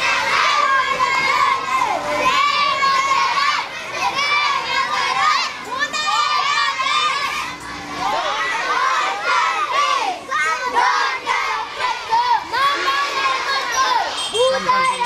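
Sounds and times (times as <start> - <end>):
children shouting: 0.0 - 15.0.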